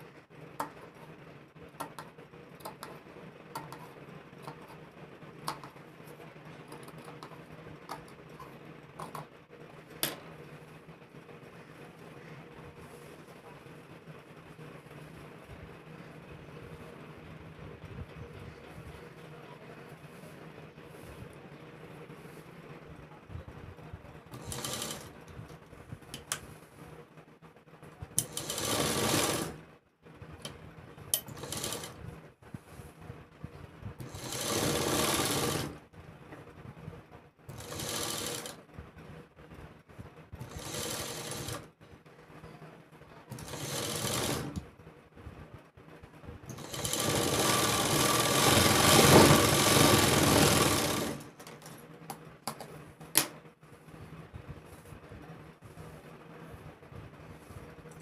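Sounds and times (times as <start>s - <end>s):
sewing machine stitching: 24.3s - 25.2s, 28.1s - 29.6s, 31.1s - 32.0s, 34.0s - 35.8s, 37.5s - 38.6s, 40.4s - 41.7s, 43.3s - 44.6s, 46.5s - 51.4s.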